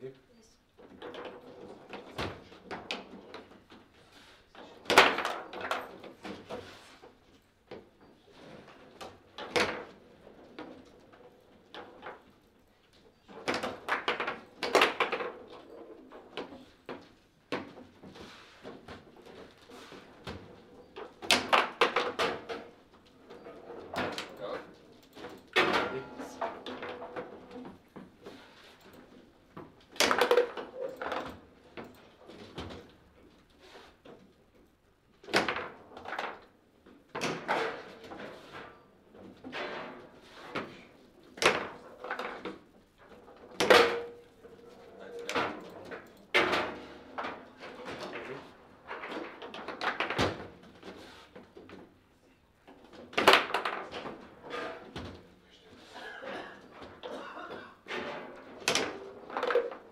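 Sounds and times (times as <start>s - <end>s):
foosball ball and rods clattering: 0.8s - 4.0s, 4.6s - 52.0s, 52.7s - 59.9s.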